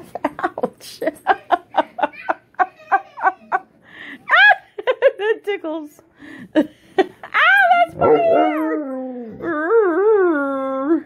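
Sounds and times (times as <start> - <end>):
dog howling: 8.0 - 10.8.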